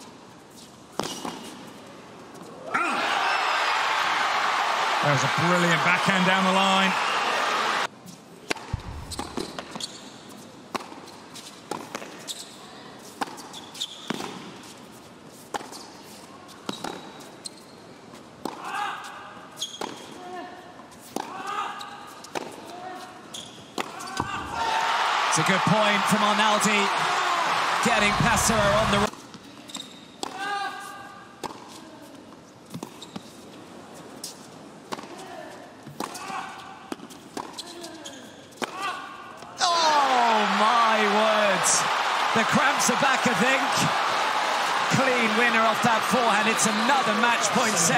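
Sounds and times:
shoe squeaks on court: 0.5 - 1.6, 8.8 - 14.8, 15.6 - 17.9, 19.6 - 20.2, 23.3 - 24.4, 29.4 - 30.2, 32.7 - 33.6, 37.1 - 38.6
tennis ball bouncing on hard court: 8.5 - 9.9
short human cries: 39.6 - 40.4.

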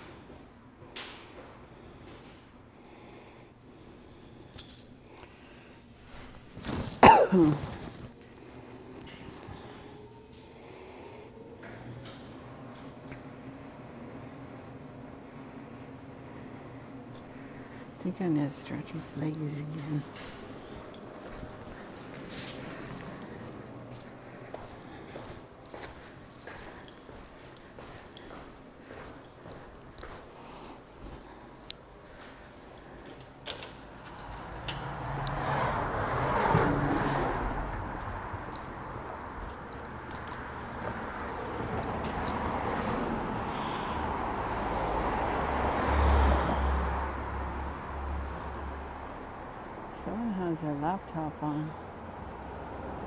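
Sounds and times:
footsteps indoors: 0.0 - 2.8, 3.6 - 45.7
city street noise: 0.0 - 53.0.

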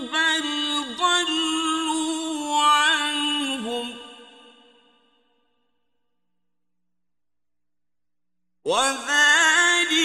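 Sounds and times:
faint echo of recitation: 0.0 - 5.4, 8.7 - 10.0.

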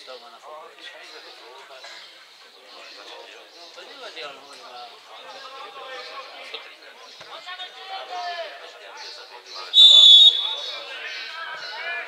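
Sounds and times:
referee's whistle blast: 9.8 - 10.8.

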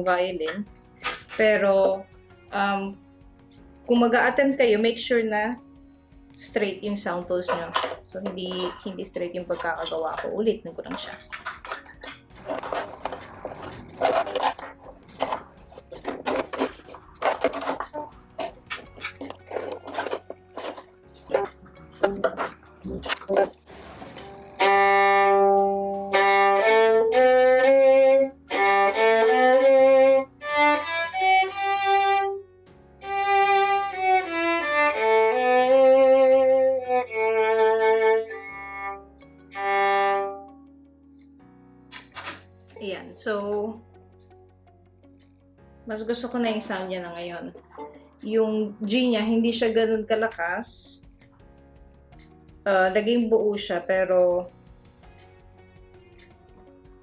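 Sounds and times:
violin bowed sustained notes: 24.5 - 32.4, 33.0 - 40.6.

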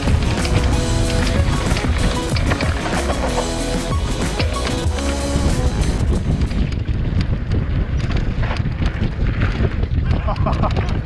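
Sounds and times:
background music over a beat: 0.0 - 6.5.

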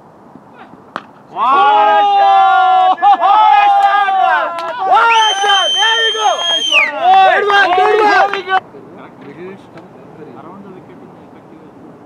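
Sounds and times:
people shouting and cheering: 1.3 - 8.6
long high-pitched whoop: 1.4 - 7.3.

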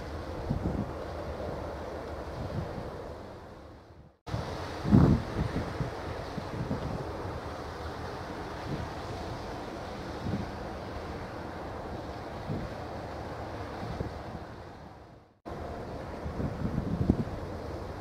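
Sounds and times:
rush of wind and water: 0.0 - 18.0
wind buffeting microphone: 0.0 - 18.0.

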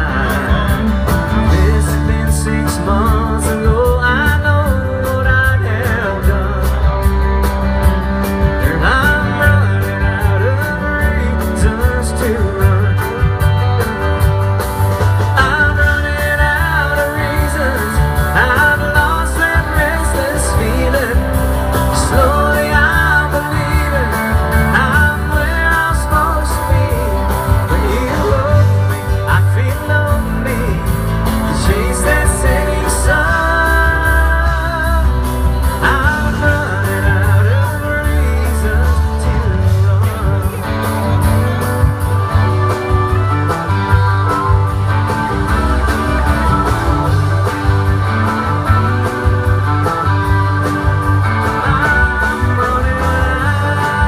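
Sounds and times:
live country band playing: 0.0 - 54.0.

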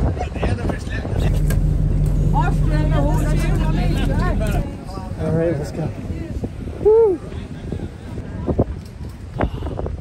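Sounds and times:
boat engine humming: 1.1 - 5.2.

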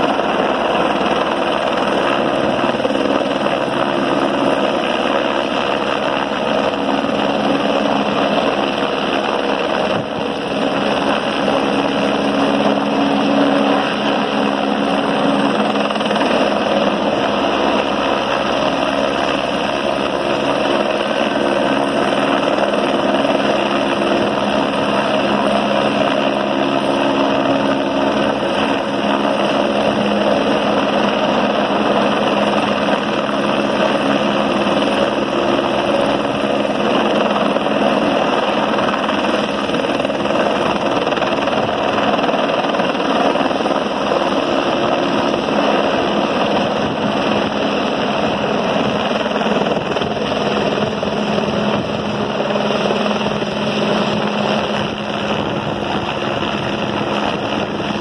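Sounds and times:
helicopter rotor and turbine: 0.0 - 58.0.

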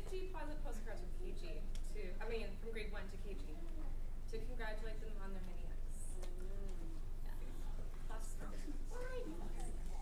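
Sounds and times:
woman speaking: 0.0 - 3.6, 4.3 - 10.0
low room hum: 0.0 - 10.0.

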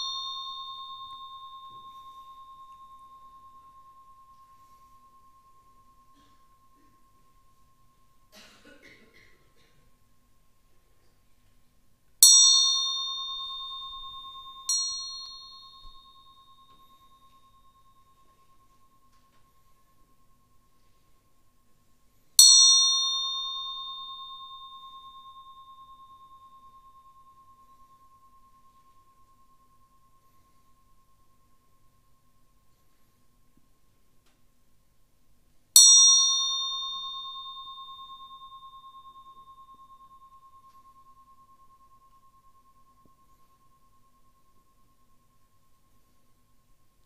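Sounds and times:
small bell ringing: 0.0 - 8.4, 12.2 - 33.4, 35.8 - 47.0.

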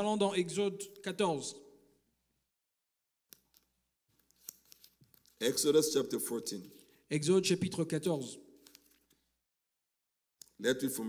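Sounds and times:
thin pages being turned: 3.4 - 5.7, 8.6 - 9.2.

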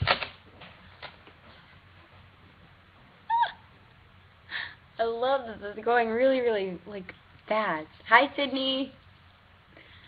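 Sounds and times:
woman squealing: 3.3 - 3.7.

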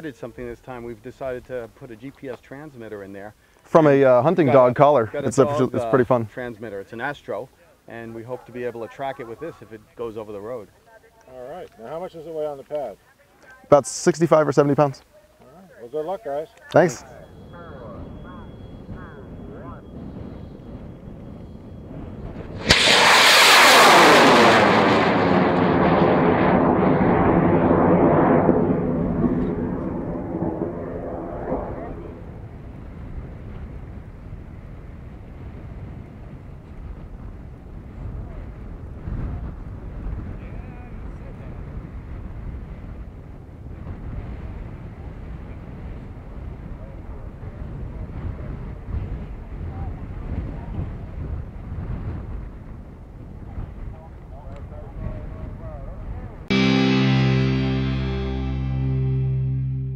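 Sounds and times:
wind noise: 16.8 - 56.5
rocket motor roar: 22.4 - 32.2.

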